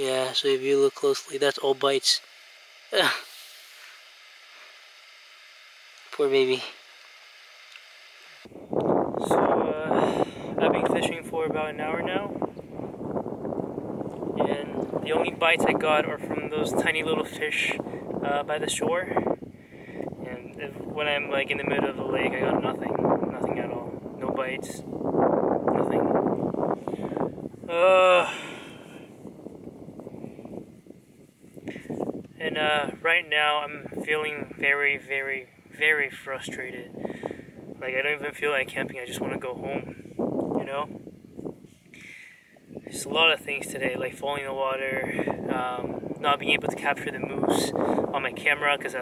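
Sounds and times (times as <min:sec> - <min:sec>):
faint steady hiss: 0:00.0 - 0:11.3
wind buffeting microphone: 0:08.4 - 0:49.0.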